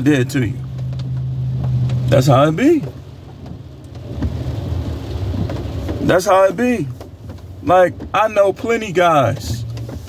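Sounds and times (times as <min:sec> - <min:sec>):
low rumble inside car cabin: 0:00.0 - 0:10.0.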